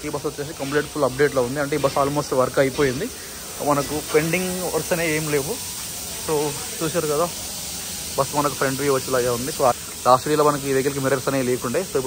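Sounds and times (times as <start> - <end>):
man talking: 0.0 - 7.6, 8.2 - 12.0
steady background hiss: 0.0 - 12.0.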